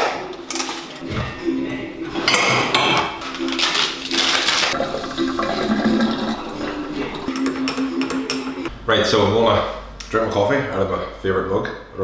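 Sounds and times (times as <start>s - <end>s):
water or steam rushing into mug: 4.8s - 7.3s.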